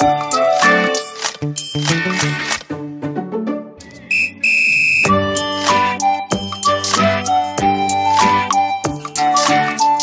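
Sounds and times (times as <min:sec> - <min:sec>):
high whistle blasts: 0:04.1 - 0:05.1.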